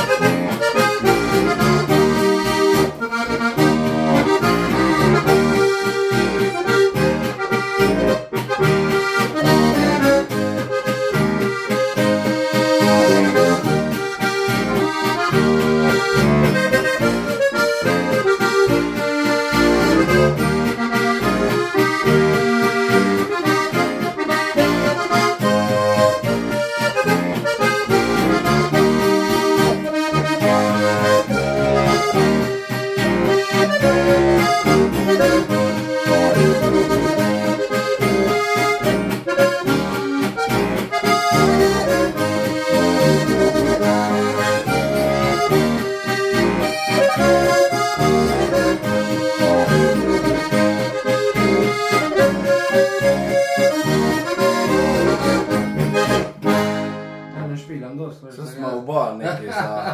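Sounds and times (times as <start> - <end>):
button accordion playing: 0.0 - 57.6.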